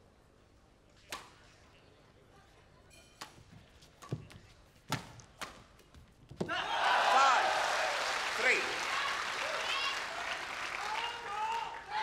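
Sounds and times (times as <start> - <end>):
crowd cheering and applauding: 6.6 - 12.0.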